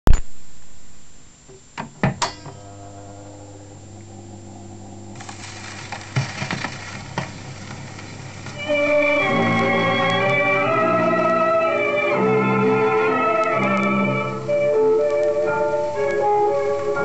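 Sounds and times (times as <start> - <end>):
record surface hiss and crackles: 0.0 - 17.0
turntable low hum: 0.1 - 17.0
record player knock: 1.5 - 2.6
record player clunks: 1.5 - 2.8, 5.2 - 8.6.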